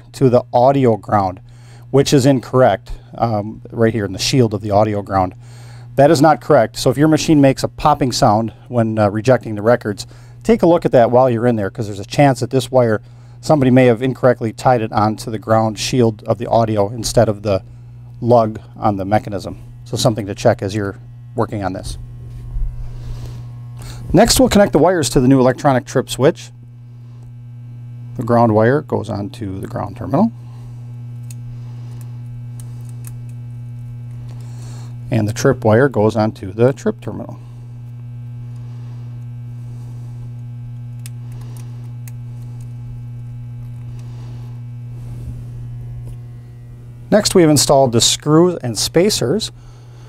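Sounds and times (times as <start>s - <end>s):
low electrical hum: 0.0s - 50.0s
faint clicks of small parts: 40.9s - 42.8s.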